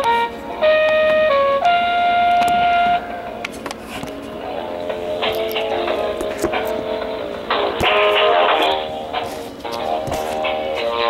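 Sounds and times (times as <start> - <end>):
telephone hold music: 0.0 - 11.0.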